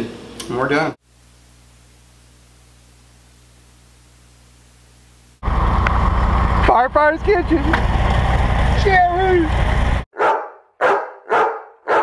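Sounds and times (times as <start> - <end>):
dog barking: 10.1 - 12.0.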